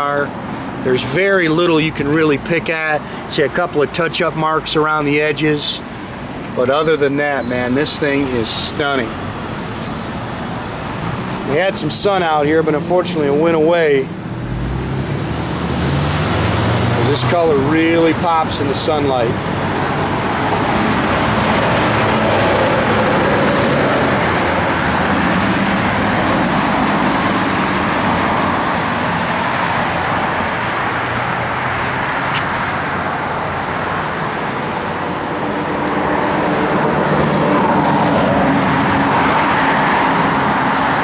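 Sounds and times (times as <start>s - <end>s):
cars passing: 0.0s - 41.0s.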